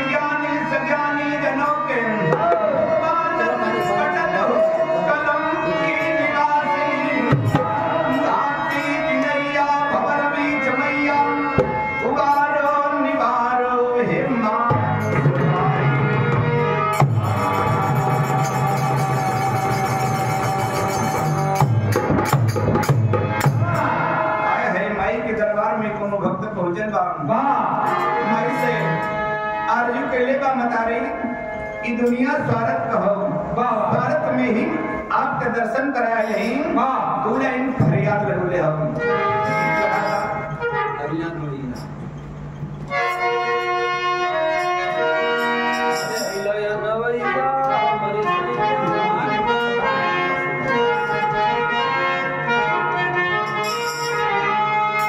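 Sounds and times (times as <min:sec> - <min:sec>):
harmonium sustained notes: 0:00.0 - 0:55.0
dholak drum stroke: 0:14.7 - 0:24.1.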